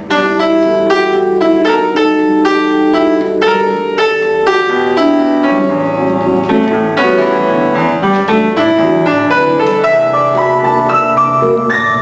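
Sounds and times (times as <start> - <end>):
piano playing slow jazz ballad: 0.0 - 12.0.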